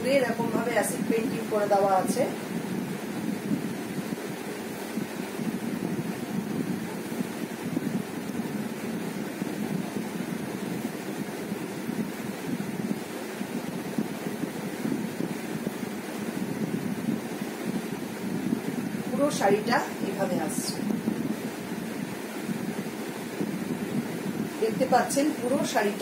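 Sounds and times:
low rumbling noise: 0.0s - 26.0s.

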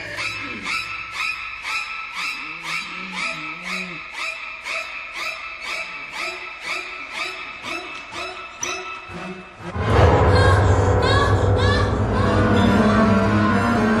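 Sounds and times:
eerie background music: 0.0s - 14.0s.

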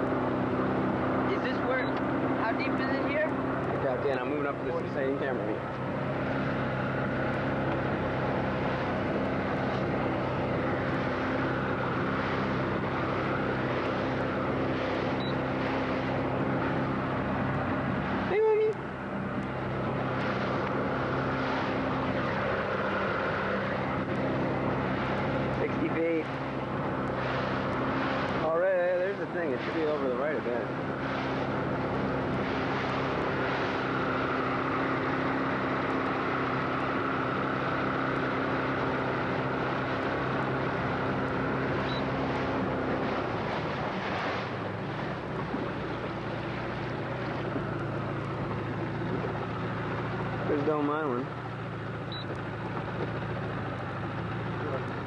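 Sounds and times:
motorboat engine running: 0.0s - 55.0s.

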